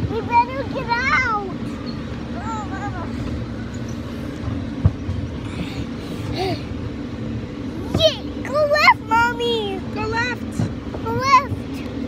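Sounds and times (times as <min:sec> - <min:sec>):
ride vehicle rumbling on track: 0:00.0 - 0:12.0.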